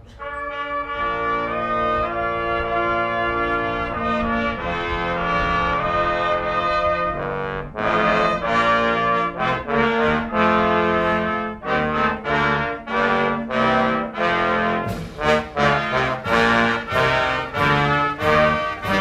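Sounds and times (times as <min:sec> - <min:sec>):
brass band playing: 0:00.0 - 0:19.0.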